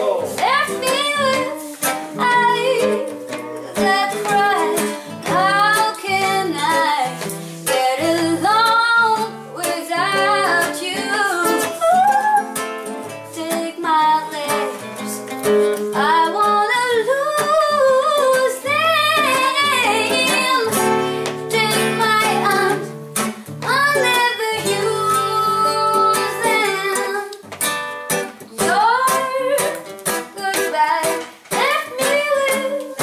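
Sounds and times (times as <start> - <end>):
woman singing with vibrato: 0.0 - 15.2, 15.9 - 23.0, 23.6 - 27.4, 28.4 - 33.0
fingerpicked classical guitar: 0.0 - 33.0.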